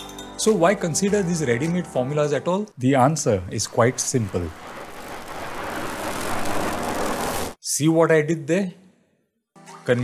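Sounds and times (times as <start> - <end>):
steady rushing noise: 3.5 - 7.6.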